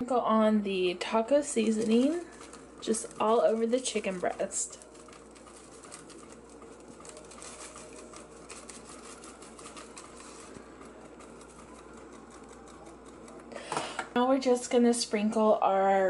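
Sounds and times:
low steady hum: 0:00.0 - 0:16.0
seasoning granules falling: 0:01.4 - 0:13.5.

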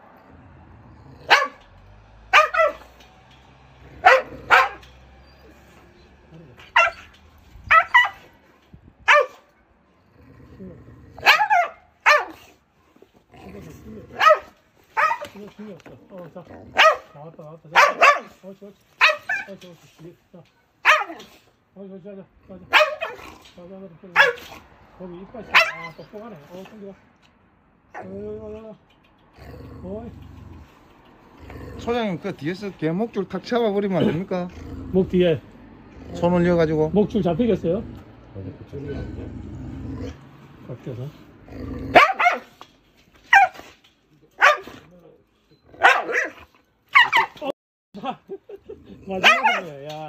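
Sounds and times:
dog barking: 0:01.2 - 0:01.7, 0:02.3 - 0:03.0, 0:04.0 - 0:04.9, 0:06.7 - 0:07.1, 0:07.7 - 0:08.3, 0:09.1 - 0:09.5, 0:11.2 - 0:12.5, 0:14.2 - 0:15.3, 0:16.7 - 0:18.4, 0:19.0 - 0:19.6, 0:20.8 - 0:21.3, 0:22.7 - 0:23.3, 0:24.1 - 0:24.6, 0:25.4 - 0:26.2, 0:41.9 - 0:42.6, 0:43.3 - 0:43.7, 0:44.4 - 0:44.8, 0:45.8 - 0:47.5, 0:49.2 - 0:49.8.

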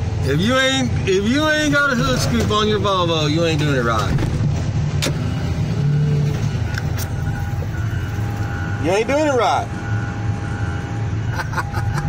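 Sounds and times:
excavator engine running: 0:00.0 - 0:12.0.

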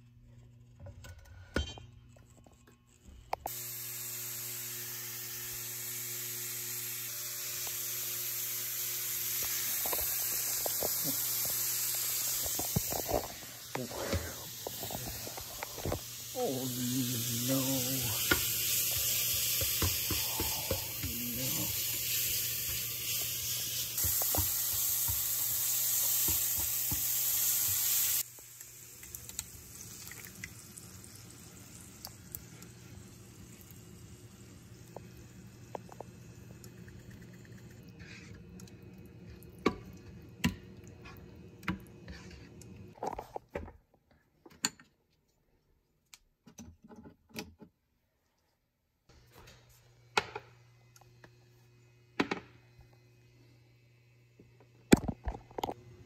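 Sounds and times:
meat sizzling in a skillet: 0:03.5 - 0:36.6.

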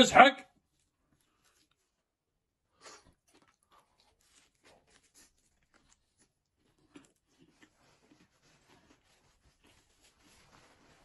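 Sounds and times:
close-up chewing: 0:00.7 - 0:11.0.

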